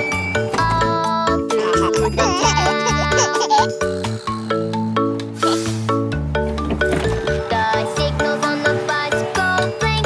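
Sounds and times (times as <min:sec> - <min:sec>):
children's song music: 0:00.0 - 0:10.0
baby giggling: 0:01.5 - 0:04.1.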